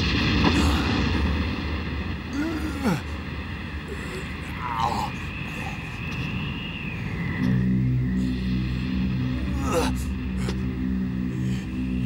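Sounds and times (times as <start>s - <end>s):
low rumbling noise: 0.0s - 12.0s
low steady held tone: 3.4s - 12.0s.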